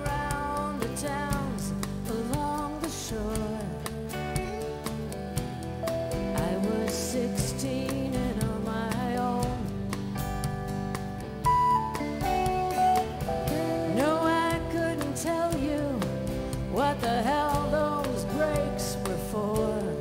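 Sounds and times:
woman singing: 0.0 - 5.1, 6.3 - 10.0, 13.4 - 20.0
country-rock band playing: 0.0 - 20.0.

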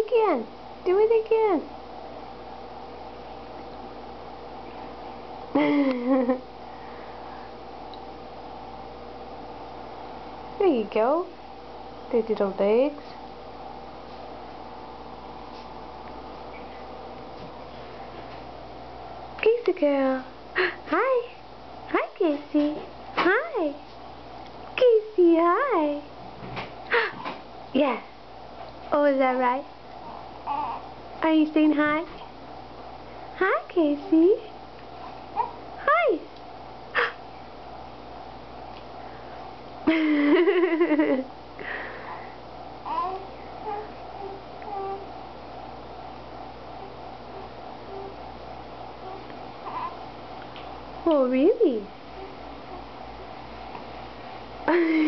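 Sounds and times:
room hum: 0.0 - 55.0
baby cooing: 30.0 - 30.9, 35.4 - 35.6, 42.8 - 45.1, 46.8 - 48.2, 49.0 - 50.0, 52.2 - 52.9.

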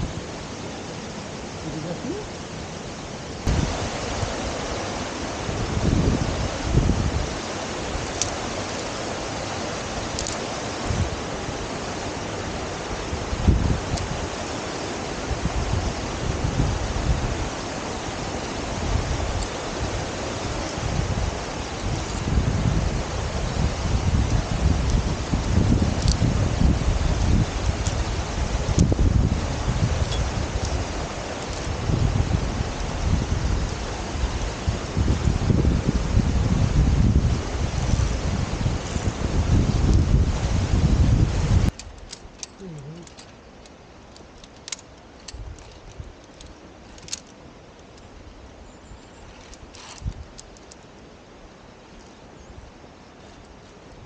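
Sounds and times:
wind buffeting microphone: 0.0 - 43.2, 44.2 - 51.0
stream and waterfall rushing: 0.0 - 54.0.

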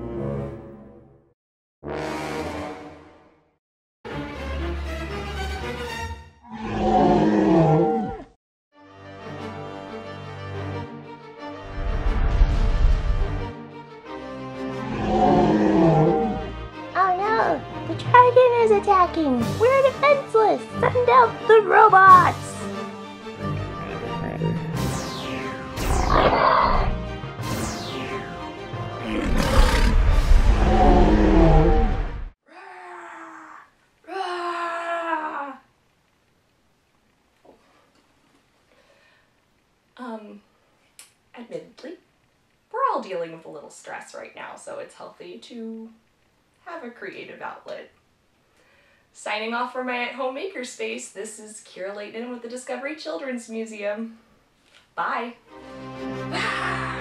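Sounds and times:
background music: 4.1 - 6.4, 8.8 - 31.8, 55.3 - 57.0
monster roar: 6.5 - 8.3, 14.8 - 16.5, 23.5 - 24.9, 26.0 - 27.0, 29.0 - 32.1
woman growling like a dragon: 14.9 - 16.5, 23.7 - 24.8, 26.1 - 26.9, 29.0 - 31.9, 56.3 - 57.0
loud dramatic music: 19.4 - 31.0.

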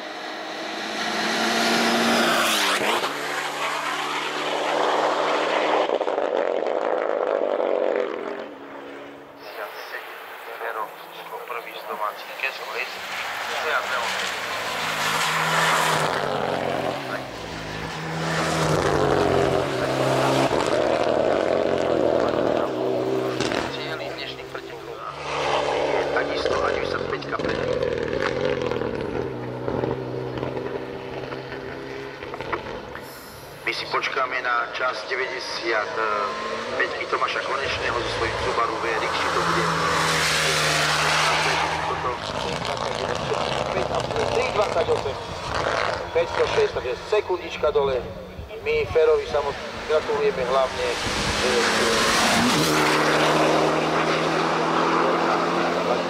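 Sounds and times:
car engine revving hard: 0.0 - 8.6, 12.4 - 47.0, 49.0 - 56.0.

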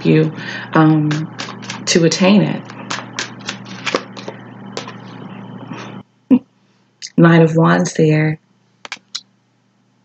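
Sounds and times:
cards riffling: 1.1 - 1.9, 2.6 - 5.0.

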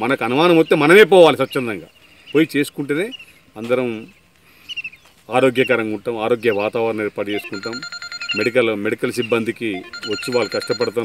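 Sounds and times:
man talking into microphone: 0.0 - 4.2, 5.2 - 11.0
high electronic tone: 7.3 - 11.0.

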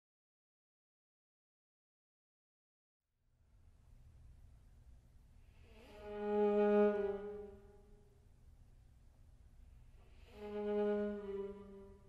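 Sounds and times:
viola long bowed note: 5.6 - 8.0, 10.0 - 12.0.

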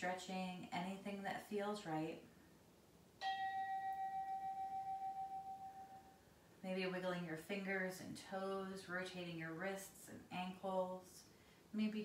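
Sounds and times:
meditation bell chime: 3.2 - 6.2.

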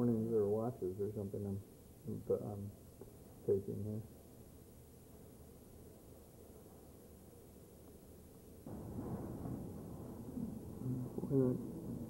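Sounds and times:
faint background noise: 0.0 - 12.0.

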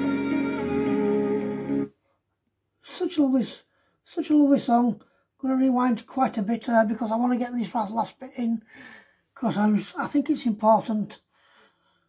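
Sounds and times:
vocal group song through speaker: 0.0 - 1.9
man speaking: 2.8 - 8.7, 9.4 - 11.2.

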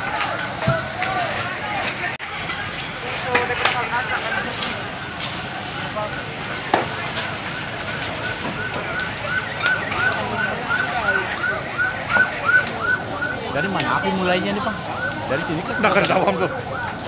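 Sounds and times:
crackle of burning house: 0.0 - 17.0
pulsing electronic siren: 4.0 - 17.0.

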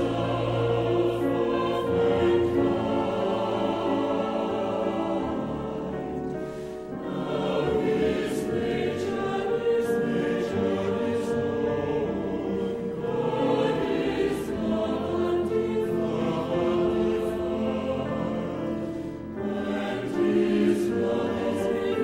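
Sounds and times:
choir singing sustained chords: 0.0 - 22.0.

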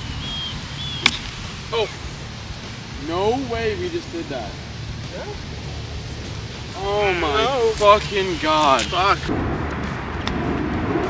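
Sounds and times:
golf club striking ball: 0.8 - 1.5.

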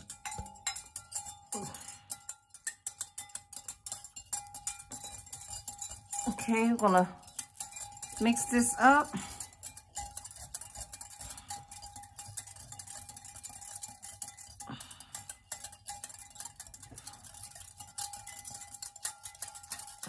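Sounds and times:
wire whisk clinking against glass: 0.0 - 20.0.

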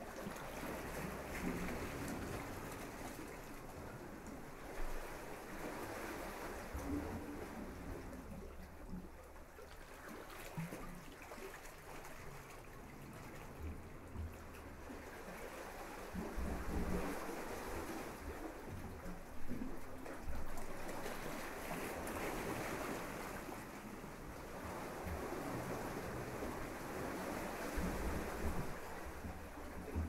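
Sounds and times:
small waves washing onto sand: 0.0 - 8.4, 10.0 - 30.0
wind rumbling on microphone: 23.9 - 30.0.

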